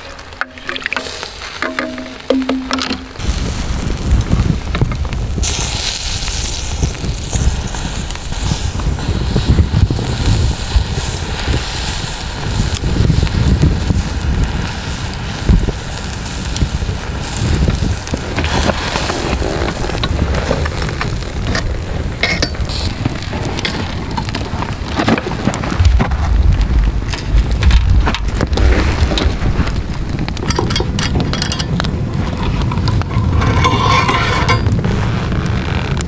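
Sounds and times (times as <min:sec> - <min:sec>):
campfire crackling and popping: 0:00.0 - 0:36.0
heavy low rumble: 0:25.5 - 0:35.7.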